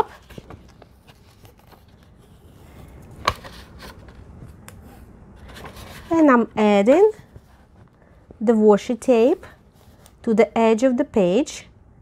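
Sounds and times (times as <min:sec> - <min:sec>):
paper rustling: 0:00.0 - 0:04.6, 0:05.4 - 0:08.2.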